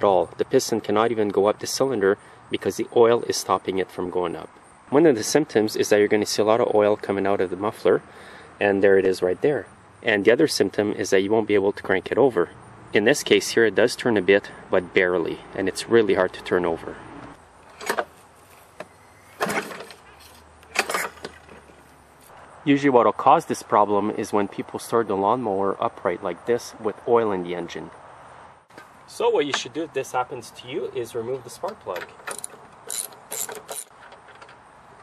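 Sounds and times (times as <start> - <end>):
recoil starter rope pulls: 17.6 - 22.3, 32.1 - 34.6
engine barely turning over: 18.8 - 21.8
socket wrench ratchet clicking: 32.2 - 34.0.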